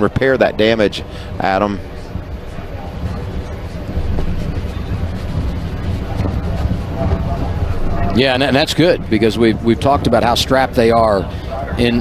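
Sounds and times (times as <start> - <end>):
race car engine low rumble: 0.6 - 12.0.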